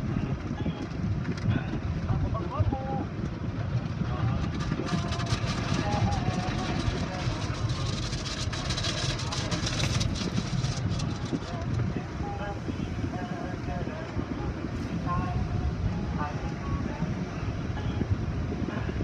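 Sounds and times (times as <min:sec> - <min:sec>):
low machinery rumble: 0:00.0 - 0:19.0.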